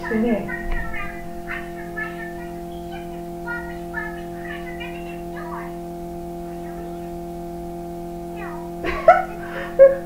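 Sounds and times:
cartoon soundtrack from tv: 0.0s - 5.7s
steady hum: 0.0s - 10.0s.

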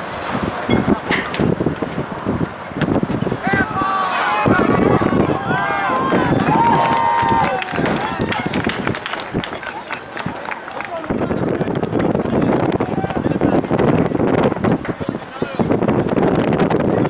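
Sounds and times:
people shouting and calling out: 3.3s - 15.8s.

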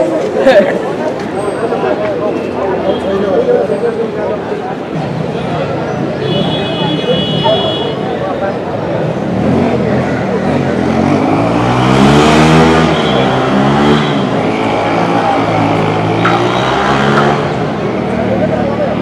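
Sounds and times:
people talking: 0.0s - 11.9s, 12.7s - 19.0s.

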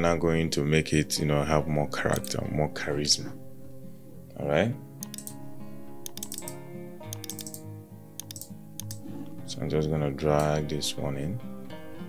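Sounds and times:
soft background music: 0.0s - 12.0s
computer keyboard clicking: 5.0s - 5.4s, 6.0s - 7.6s, 8.2s - 9.1s.

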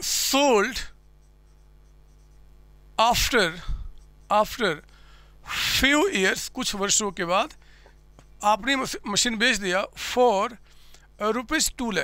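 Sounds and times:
low steady hum: 0.0s - 12.0s
marker writing on whiteboard: 1.0s - 2.5s, 5.9s - 9.4s.

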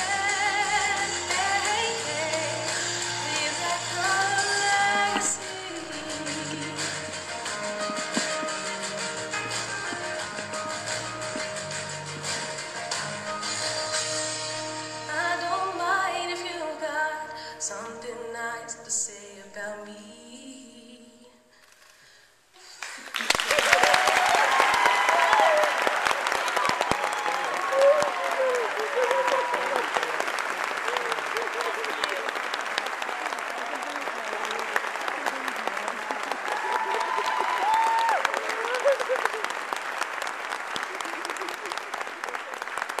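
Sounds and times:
audience applause: 1.2s - 14.0s, 22.7s - 43.0s.

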